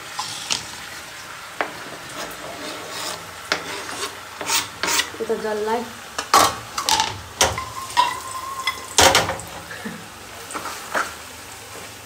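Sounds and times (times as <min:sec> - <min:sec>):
metal ladle scraping a pan: 0:00.0 - 0:05.4, 0:06.2 - 0:09.0
food sizzling in a pan: 0:00.0 - 0:12.0.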